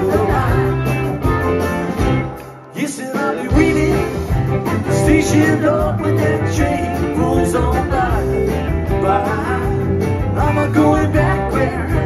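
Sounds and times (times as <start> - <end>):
electric guitar: 0.0 - 12.0
live rock band playing: 0.0 - 12.0.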